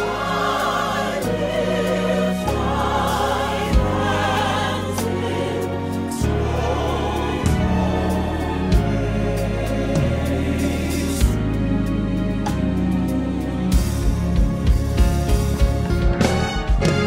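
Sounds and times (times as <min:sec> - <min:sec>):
gospel choir singing: 0:00.0 - 0:15.7
bass: 0:00.0 - 0:17.0.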